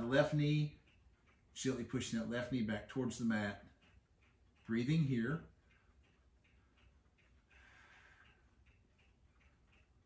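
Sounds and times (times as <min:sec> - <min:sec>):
faint even ticking: 0:00.0 - 0:10.0
soft breath-like hiss: 0:07.5 - 0:08.6.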